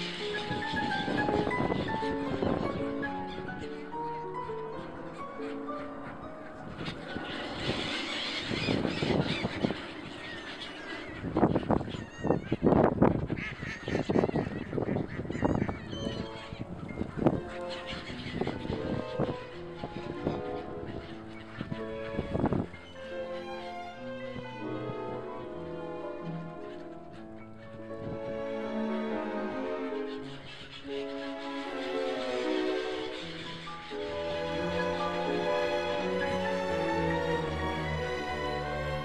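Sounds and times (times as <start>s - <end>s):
background music: 0.0s - 10.4s, 15.3s - 39.0s
gulls calling: 0.0s - 39.0s.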